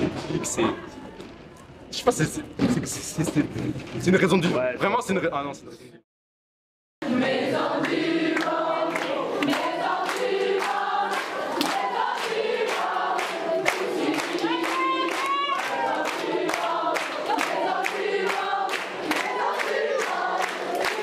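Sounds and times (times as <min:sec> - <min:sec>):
group of voices singing: 0:07.0 - 0:21.0
hand-clapping in time: 0:07.8 - 0:21.0.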